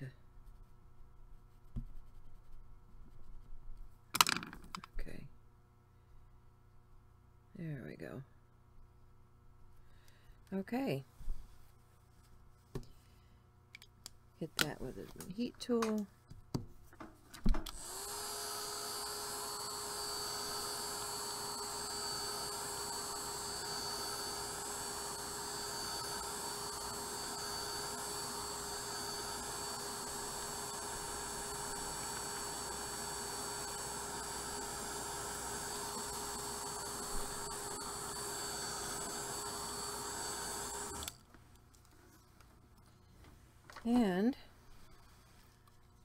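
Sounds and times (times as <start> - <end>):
heat tool fan whine: 17.7 - 41.3.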